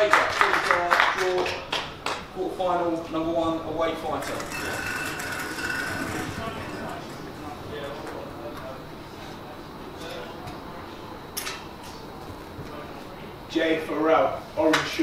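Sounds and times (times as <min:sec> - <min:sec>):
murmur of voices: 0:00.0 - 0:15.0
balls clinking in a bowl: 0:04.2 - 0:07.5.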